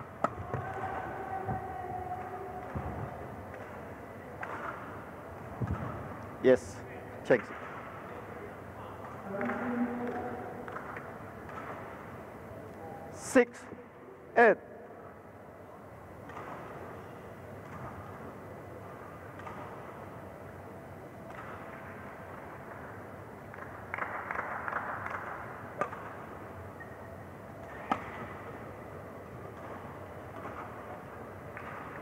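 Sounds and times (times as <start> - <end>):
hall background noise: 0.0 - 32.0
racket hitting shuttlecock: 0.2 - 0.8, 9.4 - 12.0, 16.2 - 16.8, 19.3 - 19.8, 21.2 - 21.7, 25.8 - 26.1, 27.7 - 28.4.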